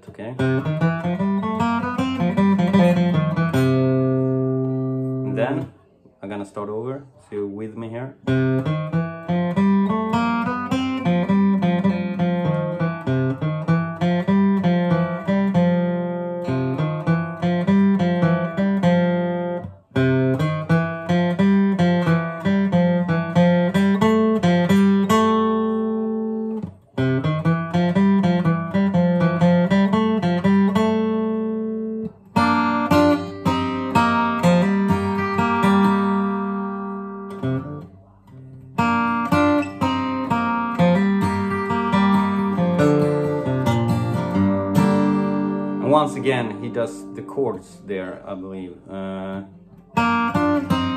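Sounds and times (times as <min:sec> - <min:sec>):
acoustic guitar flatpicked: 0:00.0 - 0:05.8, 0:08.2 - 0:50.9.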